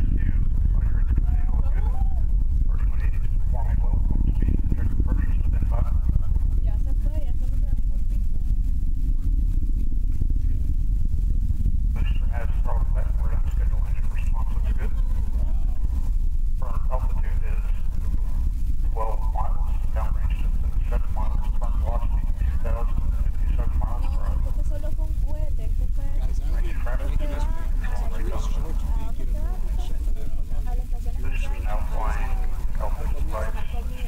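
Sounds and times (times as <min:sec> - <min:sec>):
voices talking: 0:00.0 - 0:08.5, 0:12.0 - 0:34.0
loud low rumble: 0:00.0 - 0:34.0.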